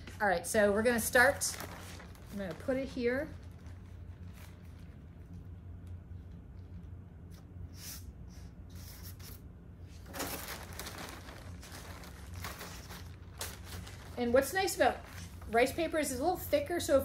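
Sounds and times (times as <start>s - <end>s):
steady low hum: 0.0s - 17.0s
paper rustling and crinkling: 1.0s - 5.4s, 9.9s - 15.9s.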